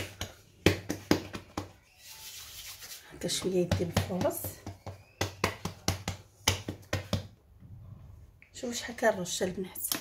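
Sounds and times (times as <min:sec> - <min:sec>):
hands slapping dough: 0:00.0 - 0:01.9, 0:02.7 - 0:07.5.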